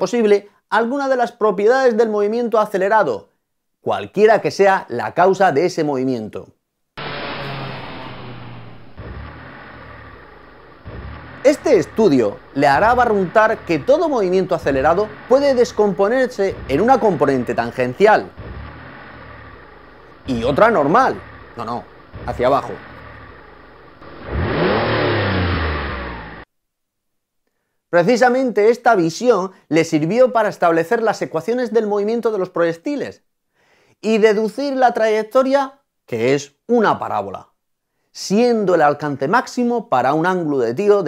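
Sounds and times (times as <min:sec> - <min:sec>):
car engine driving past: 0:07.0 - 0:26.5.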